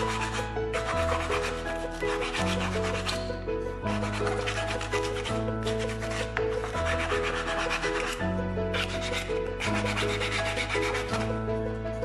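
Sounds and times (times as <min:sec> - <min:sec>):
sandpaper rubbing on wood: 0:00.0 - 0:03.3, 0:04.0 - 0:11.3.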